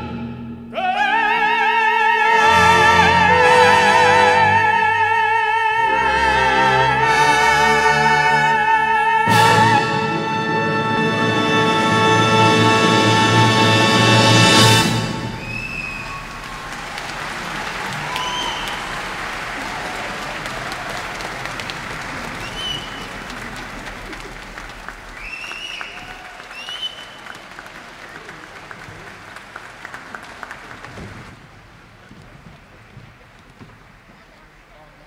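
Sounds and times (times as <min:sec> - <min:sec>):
audience applauding: 0:15.2 - 0:35.0
short whistles: 0:15.4 - 0:16.4, 0:18.0 - 0:18.9, 0:22.4 - 0:23.2, 0:25.2 - 0:27.4.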